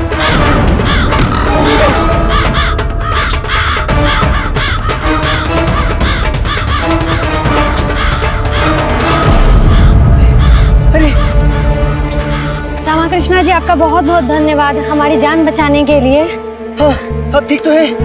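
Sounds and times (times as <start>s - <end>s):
crows cawing: 0.0s - 13.4s
background music with held notes: 0.0s - 18.0s.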